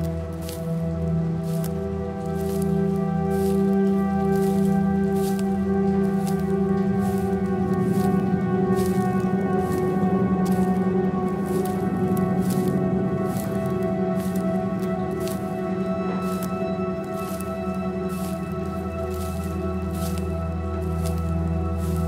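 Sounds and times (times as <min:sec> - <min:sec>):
sustained drone tones: 0:00.0 - 0:22.0.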